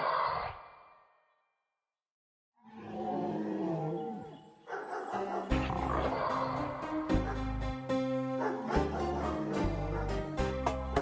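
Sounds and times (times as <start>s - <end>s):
dinosaur roar: 2.6s - 4.4s, 5.1s - 6.8s
music with deep bass and drums: 8.8s - 11.0s.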